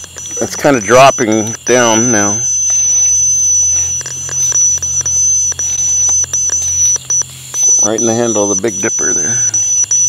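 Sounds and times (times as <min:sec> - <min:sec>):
high-pitched whine: 0:00.0 - 0:10.0
low hum: 0:00.0 - 0:10.0
faint clicks: 0:02.5 - 0:07.9.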